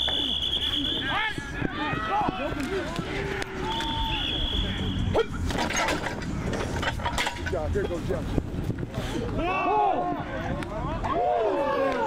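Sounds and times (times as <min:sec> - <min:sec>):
sports whistle blast: 0:00.0 - 0:01.2, 0:03.6 - 0:05.4
players and coaches shouting: 0:00.1 - 0:05.6, 0:09.2 - 0:12.0.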